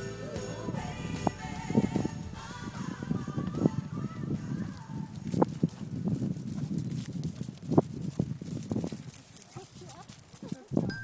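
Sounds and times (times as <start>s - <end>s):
hooves thudding on grass: 0.0s - 11.0s.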